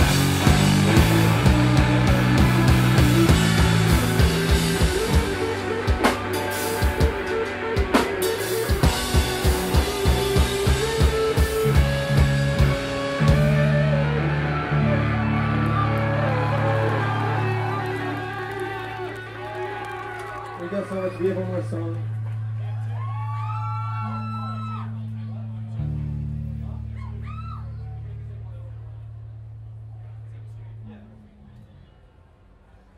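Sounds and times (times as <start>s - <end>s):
distorted electric guitars: 0.0s - 20.6s
drums: 0.0s - 24.9s
bass guitar: 0.0s - 32.3s.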